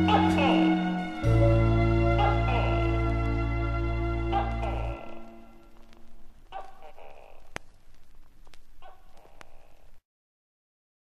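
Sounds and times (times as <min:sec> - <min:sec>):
animal calling: 0:02.1 - 0:03.2, 0:04.2 - 0:07.6, 0:08.8 - 0:10.0
sharp clicks: 0:07.4 - 0:10.0.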